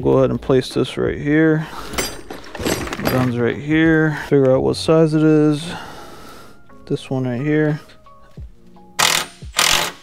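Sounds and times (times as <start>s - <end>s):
impact gun running bolts: 9.0s - 10.0s.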